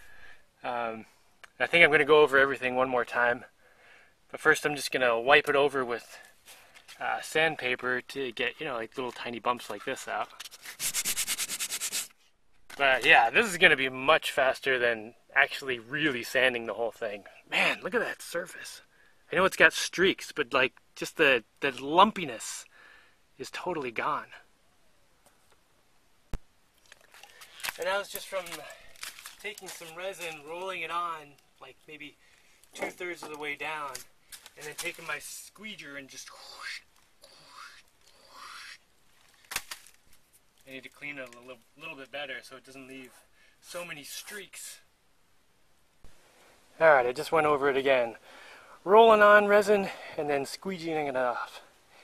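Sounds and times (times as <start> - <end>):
sandpaper rubbing on resin: 10.5 - 12.3.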